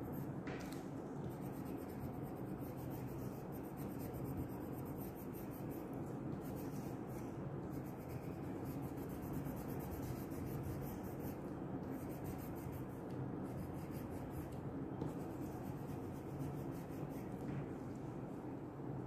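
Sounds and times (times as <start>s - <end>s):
crayon rubbing on paper: 1.3s - 17.3s.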